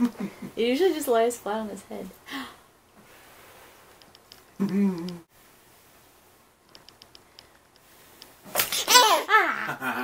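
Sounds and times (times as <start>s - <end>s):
baby laughing: 8.6s - 10.0s.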